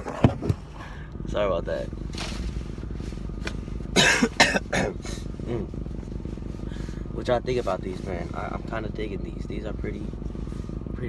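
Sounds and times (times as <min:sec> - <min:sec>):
low steady rumble: 0:00.0 - 0:11.0
man coughing: 0:03.9 - 0:05.7.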